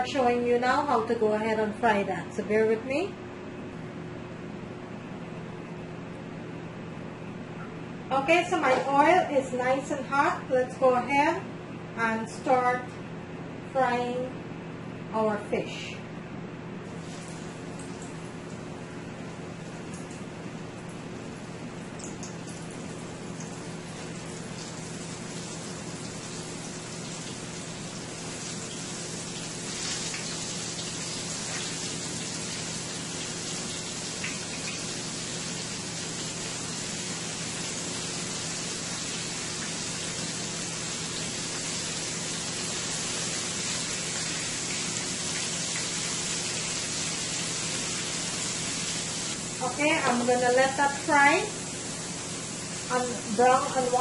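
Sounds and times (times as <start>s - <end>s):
fish sizzling in hot oil: 23.2s - 53.3s.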